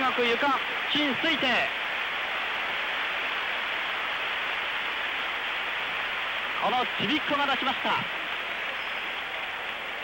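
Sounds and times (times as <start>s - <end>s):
arena crowd applauding: 0.0s - 10.0s.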